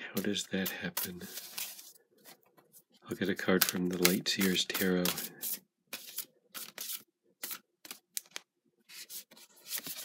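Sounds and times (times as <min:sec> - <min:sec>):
cards shuffling swishes: 0:00.9 - 0:02.9, 0:03.5 - 0:08.0, 0:08.9 - 0:10.0.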